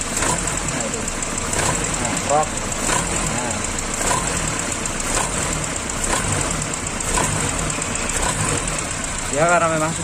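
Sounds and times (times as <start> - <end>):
noisy car engine exhaust: 0.0 - 10.0.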